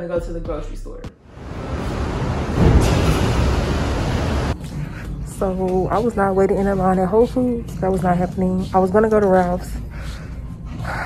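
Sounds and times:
rumbling background noise: 1.3s - 9.0s.

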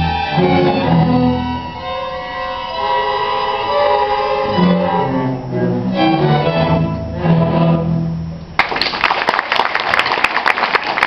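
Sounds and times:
string orchestra sustained chords: 0.0s - 8.6s.

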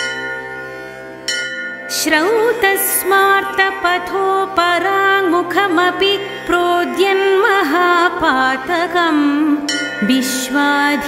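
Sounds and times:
bell ringing: 1.3s - 1.9s.

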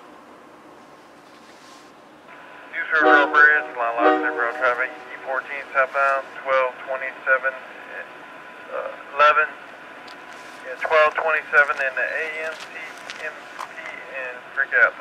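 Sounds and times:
radio hiss: 2.3s - 8.1s, 10.4s - 15.0s
voice over radio: 2.8s - 8.1s, 10.6s - 15.0s.

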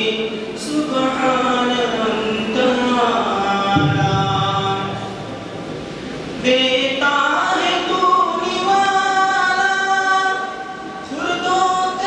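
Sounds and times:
man singing unaccompanied: 0.0s - 5.3s, 6.4s - 12.0s.

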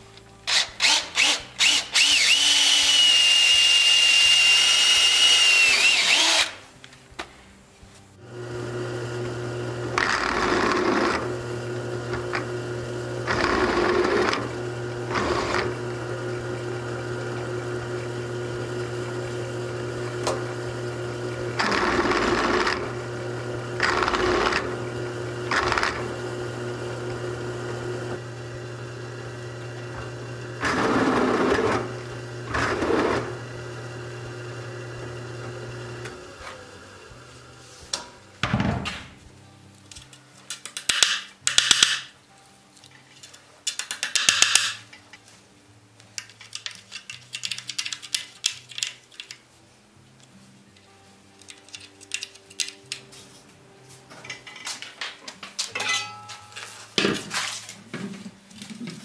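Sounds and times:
drill press motor humming: 0.5s - 6.5s, 8.2s - 36.9s
drill bit cutting steel: 0.5s - 6.6s.

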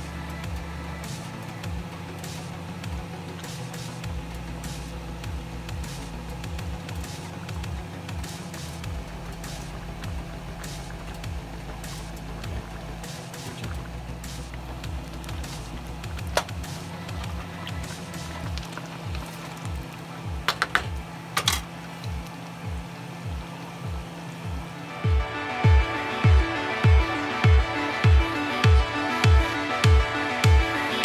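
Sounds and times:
background music with bass: 0.0s - 31.0s.

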